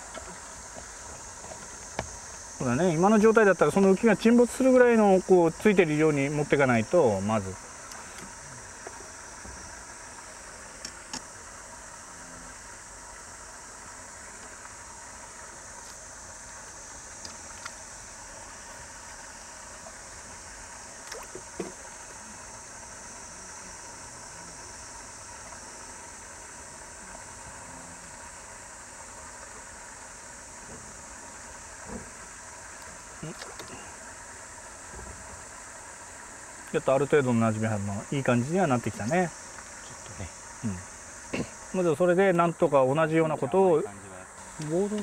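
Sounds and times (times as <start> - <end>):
outdoor background hiss: 0.0 - 45.0.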